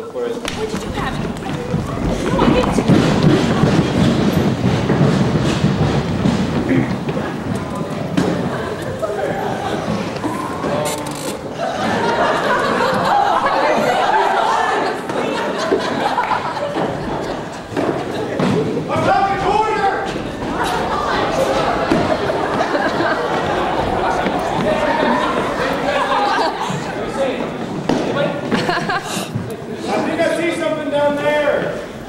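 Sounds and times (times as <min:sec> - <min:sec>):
indistinct voices in a large hall: 0:00.0 - 0:32.0
thud: 0:00.4 - 0:08.6, 0:17.7 - 0:22.7, 0:27.8 - 0:28.7
footsteps on hard stage floor: 0:00.4 - 0:13.6, 0:15.0 - 0:29.8.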